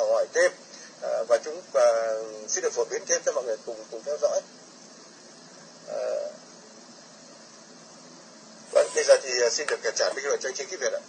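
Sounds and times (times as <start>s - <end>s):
low line noise hiss: 0.0s - 11.0s.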